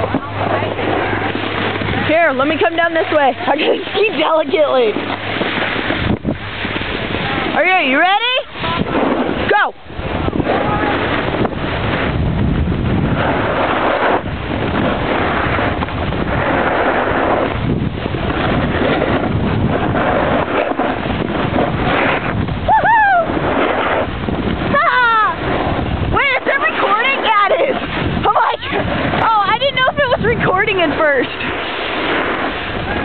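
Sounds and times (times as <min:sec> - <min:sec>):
wind rushing over microphone: 0:00.0 - 0:33.0.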